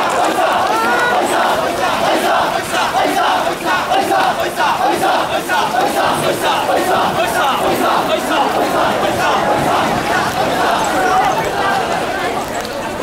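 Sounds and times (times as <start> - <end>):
men shouting in rhythm: 0.0 - 11.8.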